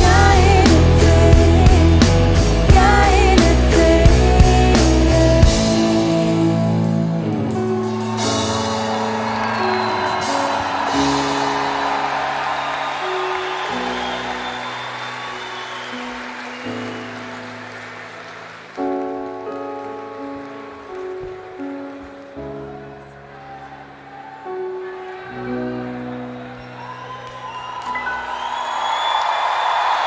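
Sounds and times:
crowd applauding and cheering: 0.0s - 30.0s.

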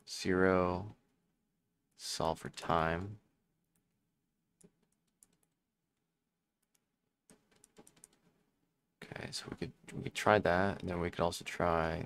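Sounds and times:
typing on computer keyboard: 4.6s - 5.6s, 6.6s - 8.4s.

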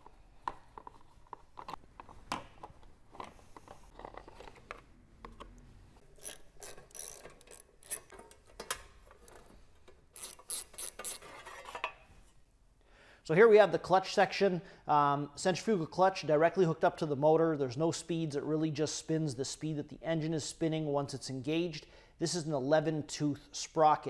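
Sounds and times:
socket ratchet clicking: 6.2s - 8.1s, 10.2s - 11.2s.

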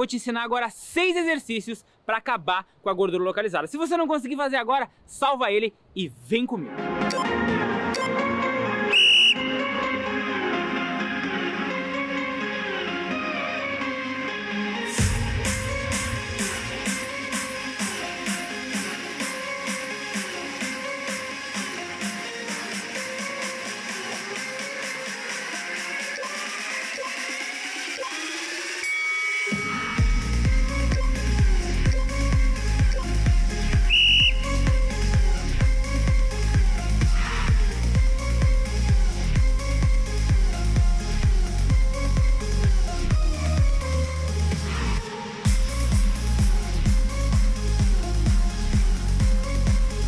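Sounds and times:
background music with steady beat: 6.6s - 50.0s
high-pitched beep: 7.1s - 7.3s
short high whistle blast: 8.9s - 9.7s, 33.8s - 34.6s.

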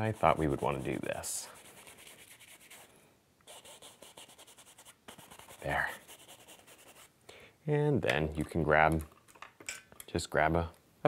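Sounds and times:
brush scrubbing paint on canvas: 0.0s - 2.9s, 3.5s - 7.1s.

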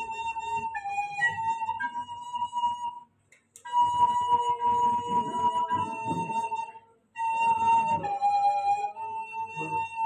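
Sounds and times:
woodwind instrument playing: 0.0s - 10.0s.

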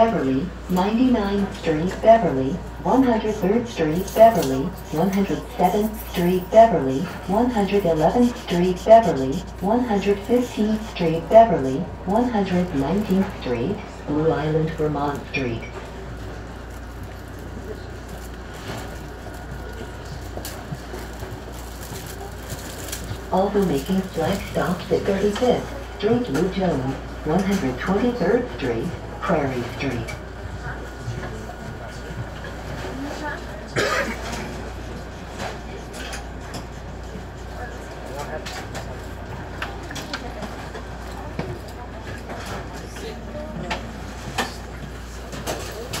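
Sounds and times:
faint voices: 0.0s - 46.0s
train car hum and rumble: 0.0s - 46.0s.

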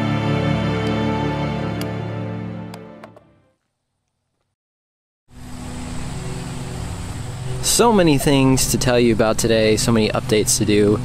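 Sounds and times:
constant low hum: 5.3s - 11.0s.

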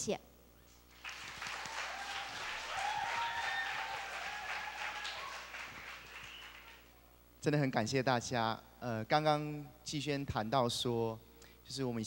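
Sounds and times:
audience applauding: 0.9s - 6.9s.

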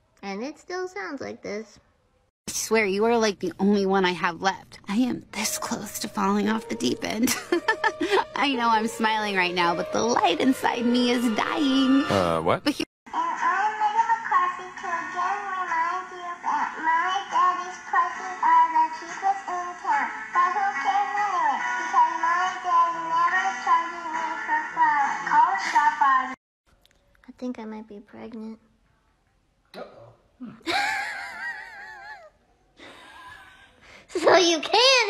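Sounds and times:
girl speaking: 0.2s - 1.8s, 27.3s - 28.7s, 34.1s - 35.0s
music: 5.5s - 12.4s.

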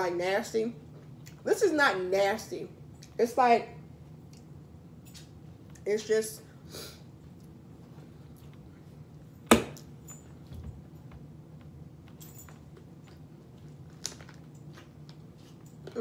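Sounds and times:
sharp knock: 9.5s - 9.8s.

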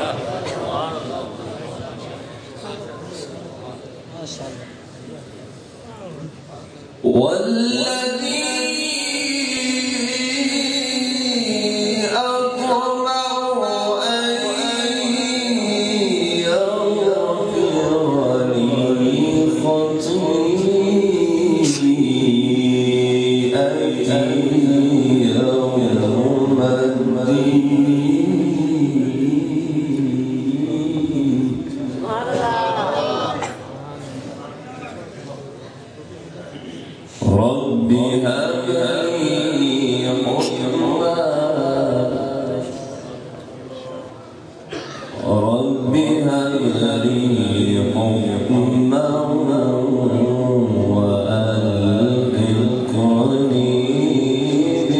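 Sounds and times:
man reciting melodically: 6.9s - 35.1s, 36.4s - 54.9s.

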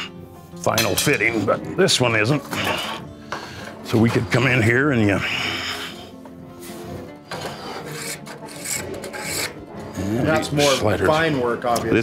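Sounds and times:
spokeshave shaving wood: 7.3s - 10.8s.

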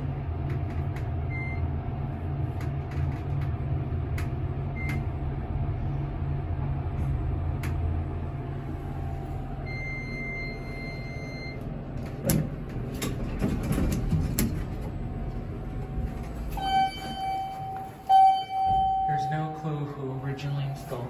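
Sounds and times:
elevator hum: 0.0s - 21.0s
lower electronic tone: 4.6s - 11.8s, 15.5s - 21.0s
high steady beep: 9.6s - 11.6s, 16.6s - 19.7s.

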